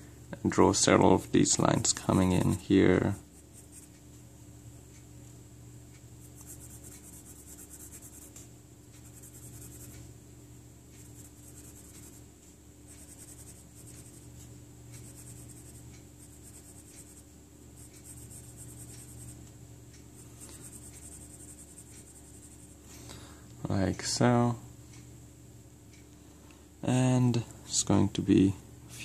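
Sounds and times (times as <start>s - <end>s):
low steady hum: 0.0s - 29.0s
pencil scratching on paper: 6.2s - 8.4s, 9.0s - 10.0s, 11.0s - 12.2s, 12.9s - 14.3s, 15.0s - 17.2s, 17.8s - 19.4s, 20.5s - 22.8s.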